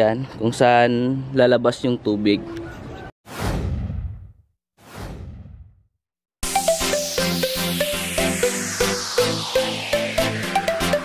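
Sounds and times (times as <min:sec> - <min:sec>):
whoosh sound effect: 0:06.6 - 0:11.0.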